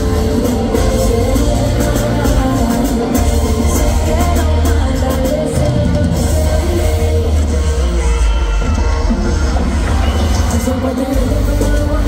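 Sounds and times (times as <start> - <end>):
live pop-rock band: 0.0 - 12.0.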